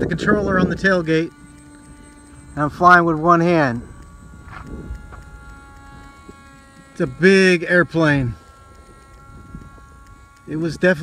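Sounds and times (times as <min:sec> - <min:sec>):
electric motor and propeller whine: 0:00.0 - 0:11.0
wind on microphone: 0:00.0 - 0:11.0.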